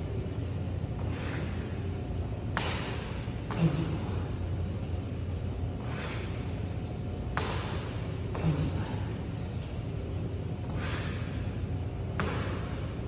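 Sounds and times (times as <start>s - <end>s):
steady low hum: 0.0s - 13.0s
person breathing: 1.0s - 1.8s, 5.8s - 6.5s, 10.7s - 11.4s.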